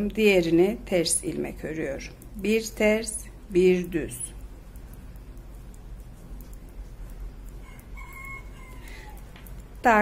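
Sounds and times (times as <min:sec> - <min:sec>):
faint rooster crowing: 0:07.5 - 0:09.6.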